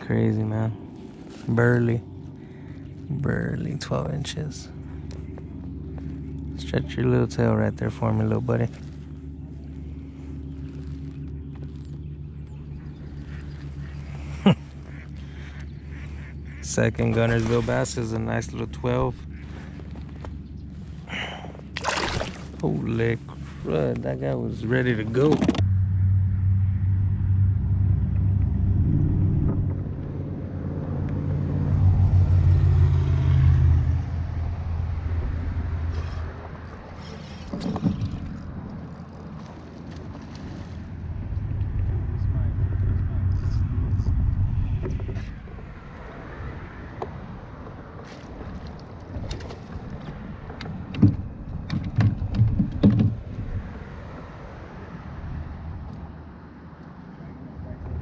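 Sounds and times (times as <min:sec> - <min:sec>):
passing engine drone: 0:00.0 - 0:17.0, 0:25.6 - 0:37.1, 0:38.4 - 0:50.6
clicks and knocks of gear: 0:25.2 - 0:25.6.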